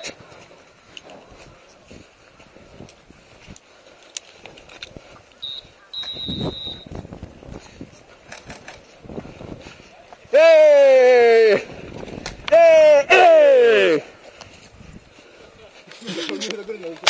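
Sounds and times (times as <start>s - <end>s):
footsteps on dirt: 0.0s - 10.8s, 11.6s - 17.0s
high-pitched beeps: 5.4s - 6.9s.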